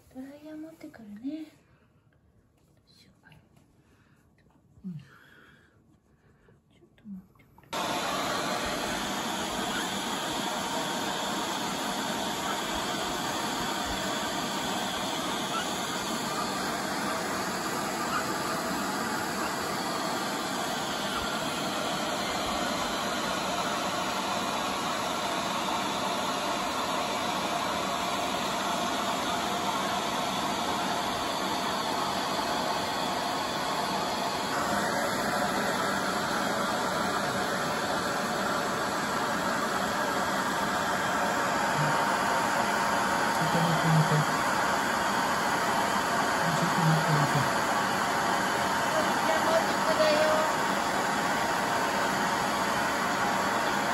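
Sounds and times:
hair dryer blowing: 7.7 - 53.9.

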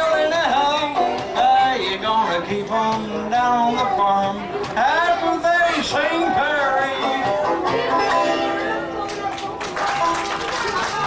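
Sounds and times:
banjo picking lively tune: 0.0 - 11.0.

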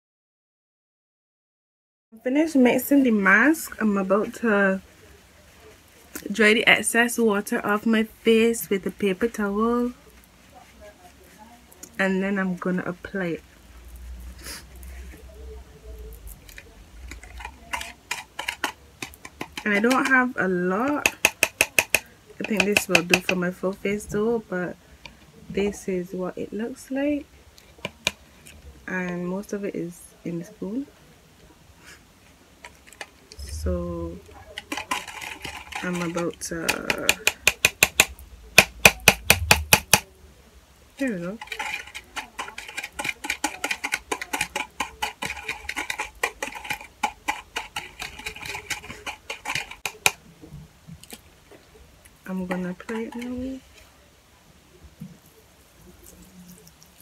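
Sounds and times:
low room rumble: 33.3 - 34.6, 38.1 - 41.0.

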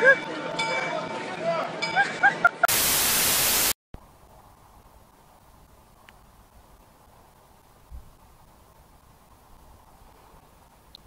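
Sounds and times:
static white noise burst: 2.7 - 9.8.

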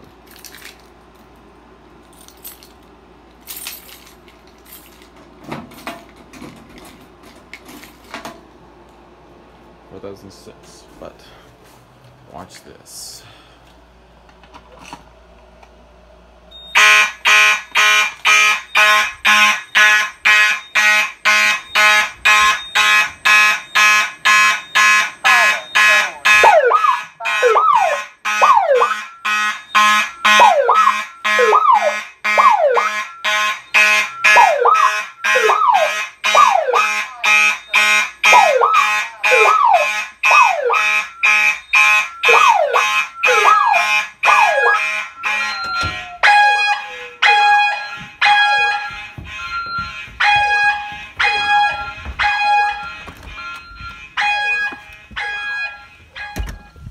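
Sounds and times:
fire alarm horns pulsing: 16.5 - 56.9.

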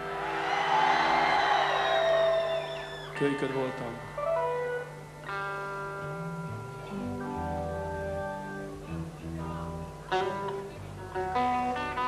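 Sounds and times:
crowd noise: 0.0 - 5.8.

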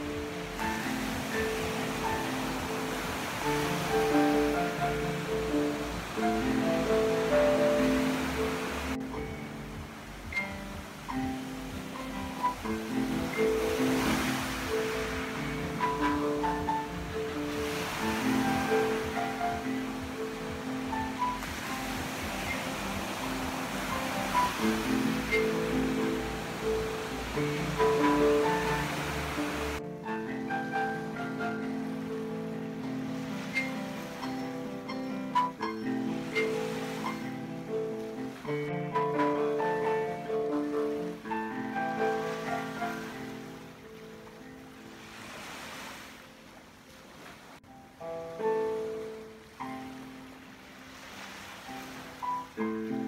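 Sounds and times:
slow piano improvisation: 0.0 - 45.4, 47.6 - 53.0
ocean waves washing: 0.0 - 53.0.

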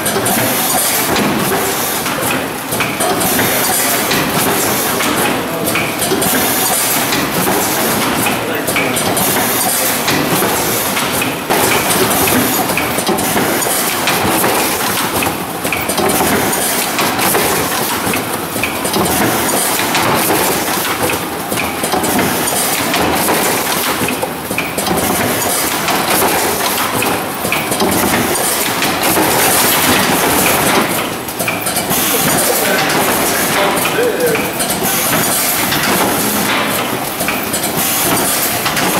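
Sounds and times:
packing machine mechanical clatter: 0.0 - 38.9.

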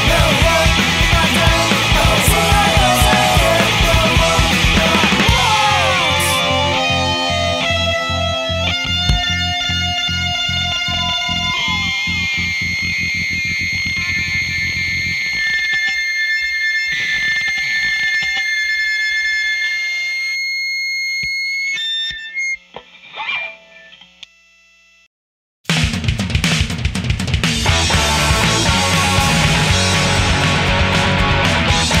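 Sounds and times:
punk rock song: 0.0 - 18.4, 25.7 - 32.0
faint guitar noises: 0.0 - 24.2
ringing distorted guitar notes: 0.0 - 24.2, 27.6 - 32.0.

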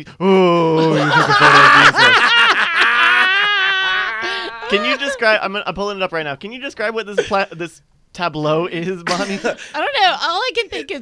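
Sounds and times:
man laughing high-pitched and wavering: 0.8 - 5.4
men laughing loudly: 0.8 - 5.4, 9.1 - 9.6.

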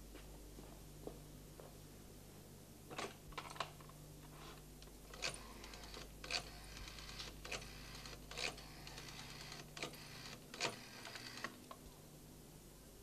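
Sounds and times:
telephone dial clicks: 5.1 - 11.6.

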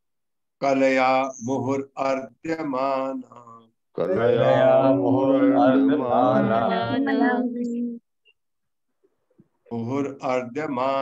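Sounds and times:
man chanting verse: 4.0 - 7.5.

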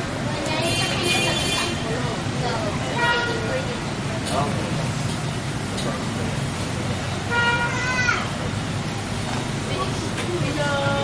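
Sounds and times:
vehicle engines running: 0.0 - 11.0
car horn toot: 0.6 - 1.8.

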